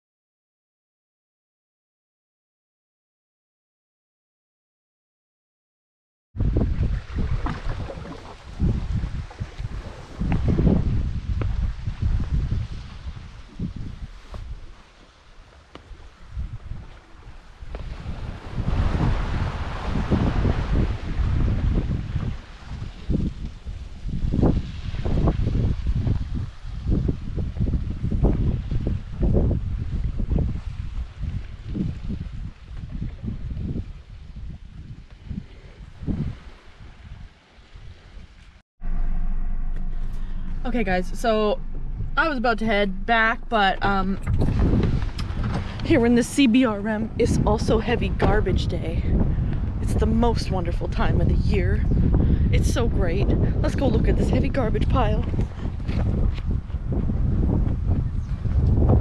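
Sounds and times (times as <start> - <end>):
wind buffeting microphone: 6.4 - 59.0.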